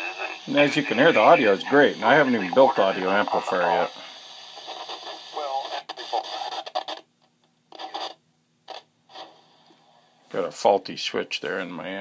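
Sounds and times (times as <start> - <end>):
radio receiver hiss: 0.0 - 7.1.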